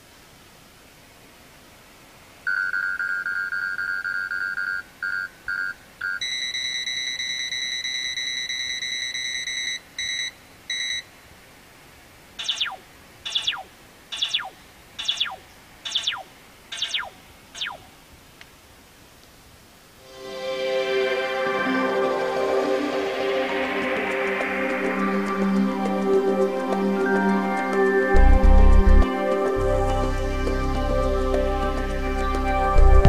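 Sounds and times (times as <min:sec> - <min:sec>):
radar detector alarm beeps: 0:02.5 - 0:11.1, 0:12.4 - 0:17.8
falling electronic sweeps: 0:12.4 - 0:17.9, 0:20.0 - 0:33.0.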